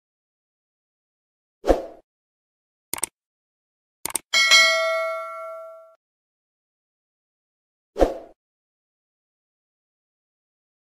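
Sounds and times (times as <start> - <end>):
short clicks: 2.9 - 3.2, 4.0 - 4.3
notification bell ding: 4.4 - 6.0.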